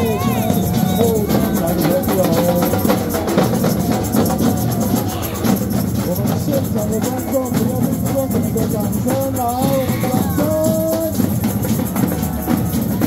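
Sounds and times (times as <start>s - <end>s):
crowd singing and shouting: 0.0s - 13.0s
samba drums playing fast rhythm: 0.0s - 13.0s.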